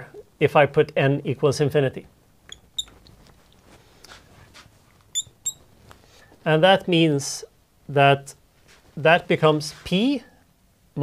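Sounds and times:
marker squeaking on glass: 0:02.5 - 0:03.0, 0:05.1 - 0:05.7.

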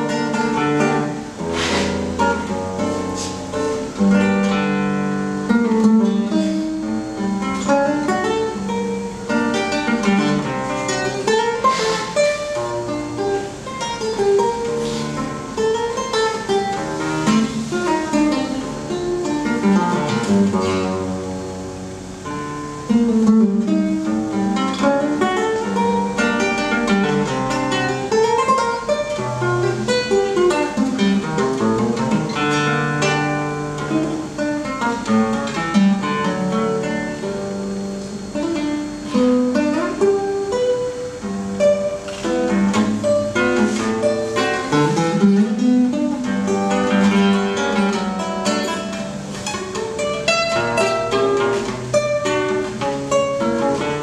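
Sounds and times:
fingerstyle classical guitar: 0:00.0 - 0:54.0.

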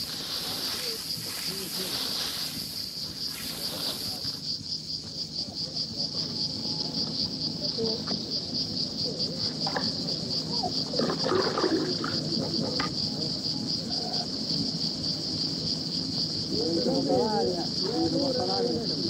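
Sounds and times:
faint distant voices: 0:00.0 - 0:19.0
insects chirring: 0:00.0 - 0:19.0.

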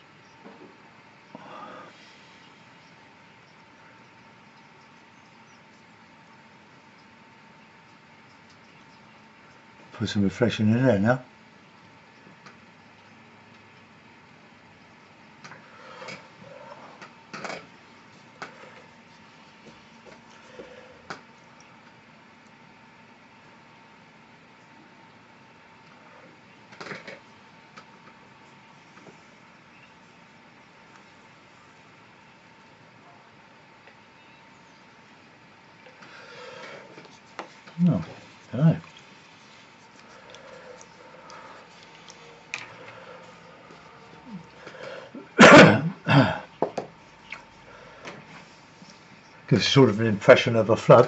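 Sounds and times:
faint steady hum: 0:00.0 - 0:51.0
brush scraping and tapping paper: 0:36.9 - 0:43.9.

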